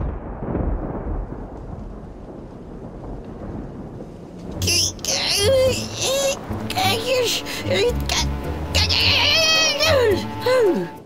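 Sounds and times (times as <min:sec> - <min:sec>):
thunder rumbling: 0:00.0 - 0:11.0.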